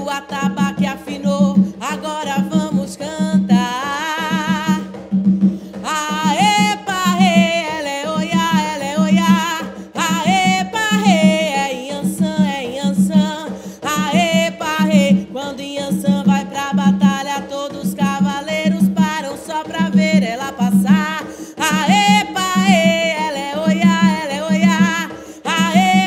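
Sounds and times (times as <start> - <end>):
hand drum beating fast rhythm: 0.0 - 26.0
woman singing: 0.0 - 26.0.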